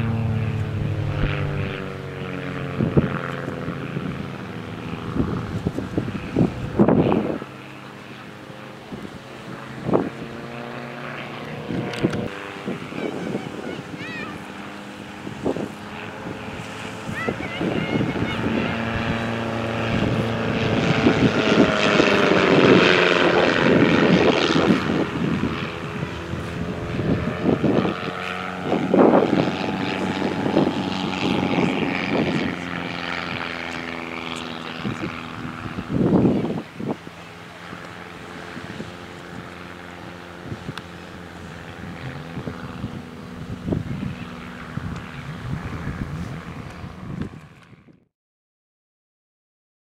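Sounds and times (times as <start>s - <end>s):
propeller plane engine droning: 0.0s - 48.1s.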